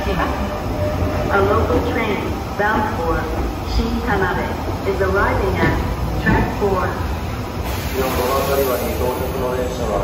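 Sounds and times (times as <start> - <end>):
station announcement voice: 0.0 - 7.1, 7.9 - 10.0
electric train rumbling: 0.0 - 10.0.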